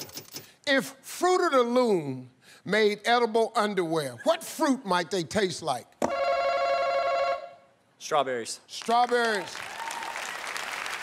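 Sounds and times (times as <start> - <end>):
game show buzzer ringing: 6.0 - 7.6.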